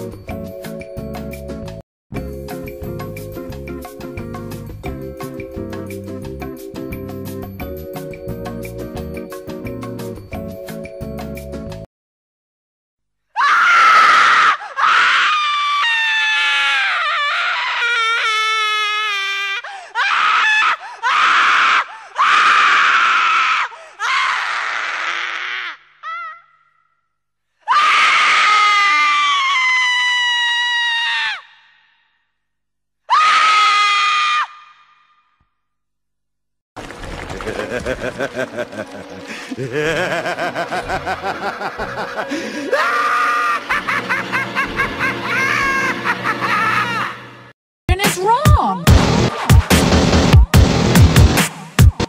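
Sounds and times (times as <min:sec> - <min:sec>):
high-pitched scream: 0:13.4 - 0:26.8, 0:33.1 - 0:35.2, 0:42.7 - 0:43.7.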